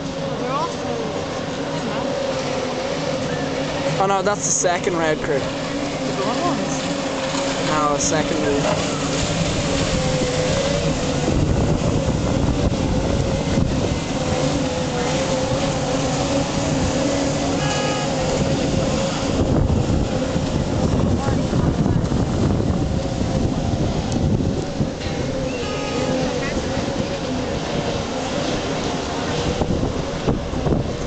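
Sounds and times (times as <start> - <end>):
outboard engines droning: 0.0 - 31.0
wind on microphone: 0.0 - 31.0.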